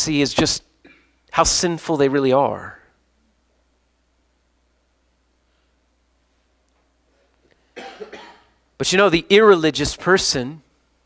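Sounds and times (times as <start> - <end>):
man speaking: 0.0 - 0.7, 1.3 - 2.9, 8.8 - 10.6
man coughing: 0.8 - 1.2, 7.8 - 8.6.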